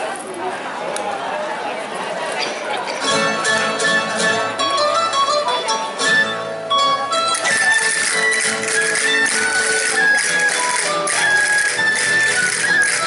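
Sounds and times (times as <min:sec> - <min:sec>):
plucked strings dance music: 0:03.0 - 0:13.0.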